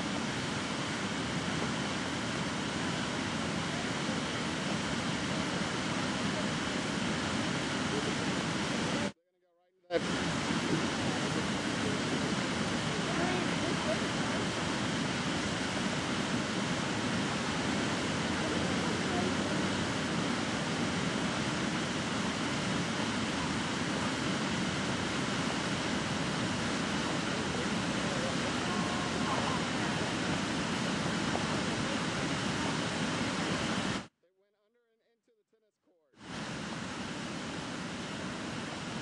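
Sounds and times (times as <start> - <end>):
faint voices: 0.0 - 9.2, 9.9 - 34.0, 36.3 - 39.0
floodwater rushing: 0.0 - 9.2, 10.0 - 34.0.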